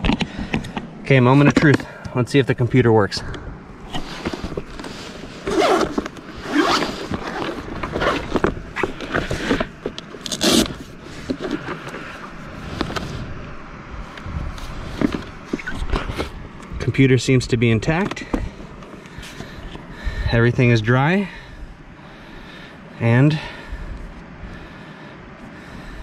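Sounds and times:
scraping and rustling of sleeve: 0:03.8 - 0:13.4
zip pulled open: 0:03.9 - 0:13.2.

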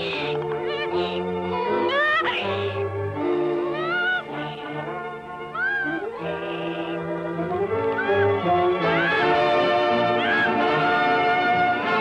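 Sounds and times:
orchestral music: 0:00.0 - 0:12.0
cartoon donkey braying: 0:03.7 - 0:04.5, 0:05.5 - 0:07.0, 0:07.8 - 0:09.5, 0:10.1 - 0:11.1.

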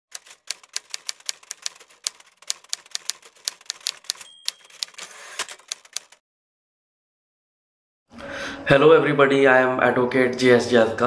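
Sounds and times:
typewriter keys clacking: 0:00.1 - 0:06.2
typewriter bell ding: 0:03.6 - 0:05.6.

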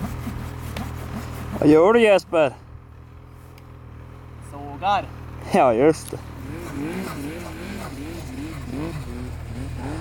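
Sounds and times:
snowmobile engine idling: 0:00.0 - 0:10.0.

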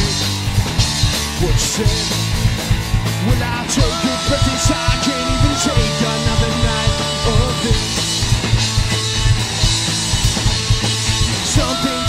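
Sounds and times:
bass guitar: 0:00.0 - 0:12.0
drum kit beat: 0:00.0 - 0:12.0
electric guitar: 0:00.0 - 0:12.0.

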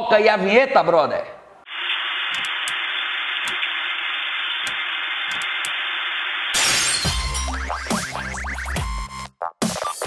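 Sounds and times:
static hiss with crackles: 0:01.5 - 0:06.6
glass shattering crash: 0:06.5 - 0:08.2.

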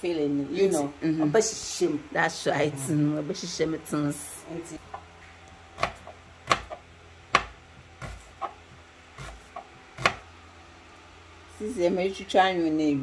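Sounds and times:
knife cutting onion on board: 0:05.8 - 0:10.3.

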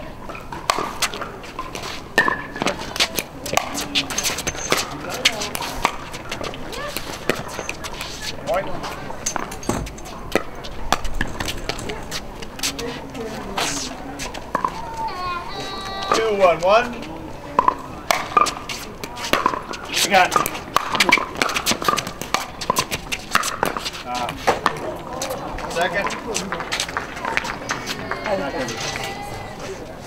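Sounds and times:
faint voices talking: 0:00.0 - 0:30.0
pickleball paddles hitting balls: 0:00.2 - 0:12.7, 0:14.5 - 0:15.0, 0:15.8 - 0:29.1.

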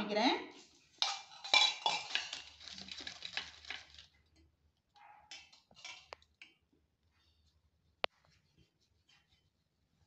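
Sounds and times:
plastic rustling: 0:00.6 - 0:04.2.

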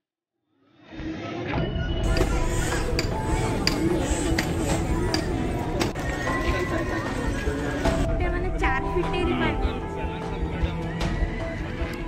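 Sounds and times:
music playing: 0:01.6 - 0:12.0
crowd chatter: 0:02.0 - 0:12.0.

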